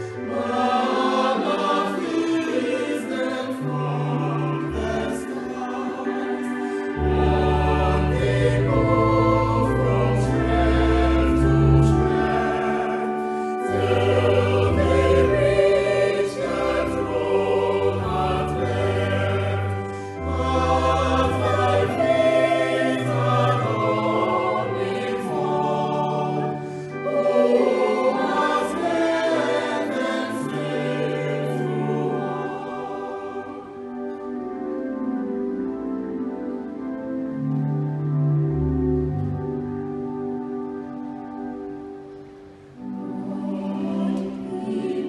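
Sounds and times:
choir singing a hymn: 0:00.0 - 0:41.0, 0:42.6 - 0:45.0.

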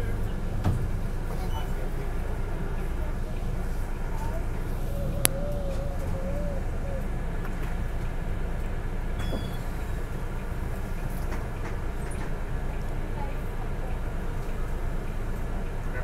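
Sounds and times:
bus engine rumble: 0:00.0 - 0:16.0.

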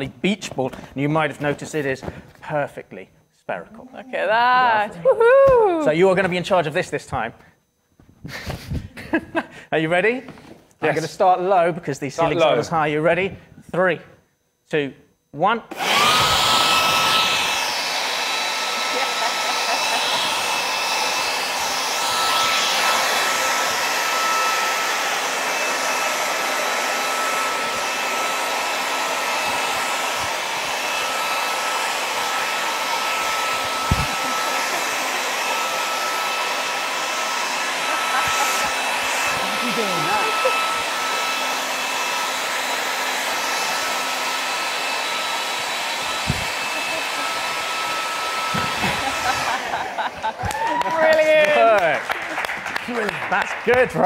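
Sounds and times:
leaf blower running: 0:15.7 - 0:53.4.

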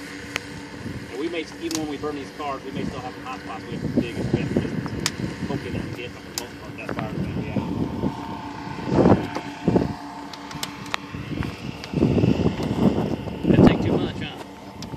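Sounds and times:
engine hum: 0:00.0 - 0:14.9
wind on microphone: 0:00.0 - 0:14.9.

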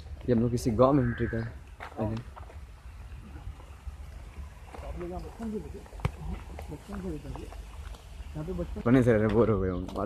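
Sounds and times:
quiet talking: 0:03.0 - 0:10.0.

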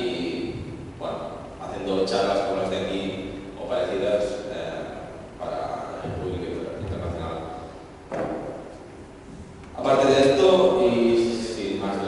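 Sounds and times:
man talking into a microphone: 0:00.0 - 0:08.3, 0:09.7 - 0:12.0.

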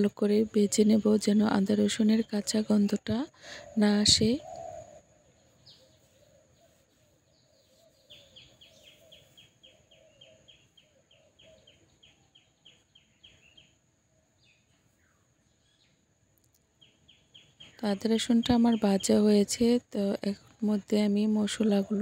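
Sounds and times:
faint bird chirps: 0:00.0 - 0:22.0.

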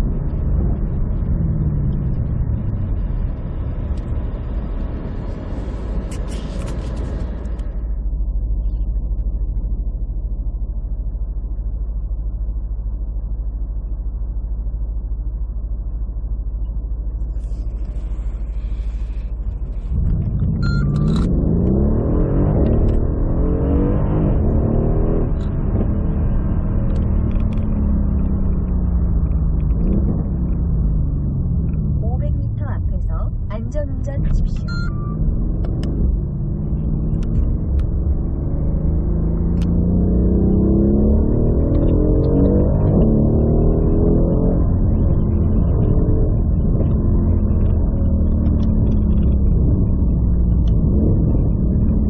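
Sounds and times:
car engine idling and accelerating: 0:00.0 - 0:52.0.

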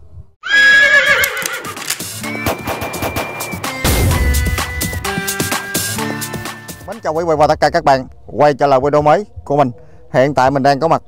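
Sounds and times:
horse whinny: 0:00.4 - 0:01.9
intro music with held tones: 0:02.0 - 0:08.1
deep hit: 0:02.2 - 0:05.2.

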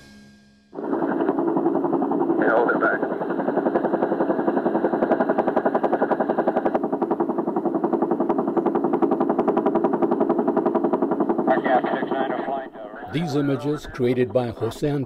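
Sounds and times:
helicopter rotor blades chopping: 0:00.7 - 0:15.0.

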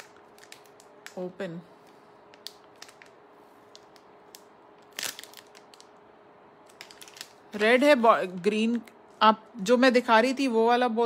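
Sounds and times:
plastic packaging crinkling: 0:00.0 - 0:06.0, 0:06.6 - 0:09.0.

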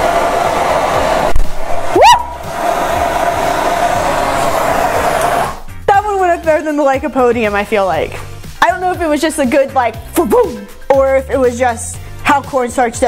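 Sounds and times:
rushing of burning dust: 0:00.0 - 0:05.7
short rising whoop: 0:00.0 - 0:05.7.

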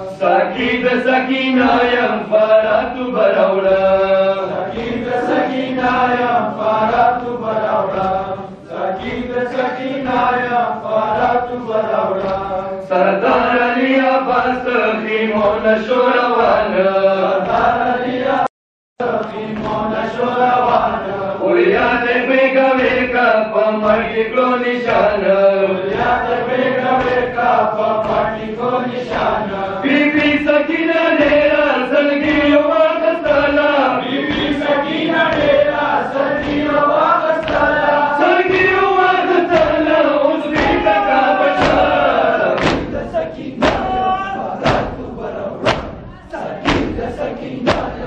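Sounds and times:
men chanting in unison: 0:00.0 - 0:48.0
hands striking chests: 0:40.6 - 0:48.0.

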